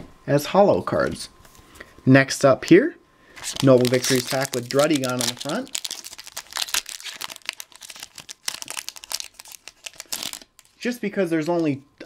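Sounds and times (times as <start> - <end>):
foil wrapper crinkling and tearing: 3.4 - 10.8.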